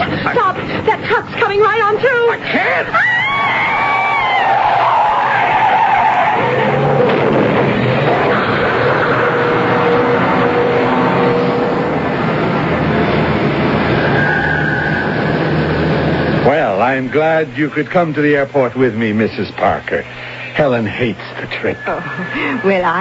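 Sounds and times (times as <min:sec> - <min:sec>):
steady wreck noise: 0:00.0 - 0:23.0
tires squealing: 0:02.7 - 0:16.6, 0:21.6 - 0:23.0
car crash: 0:04.0 - 0:16.4.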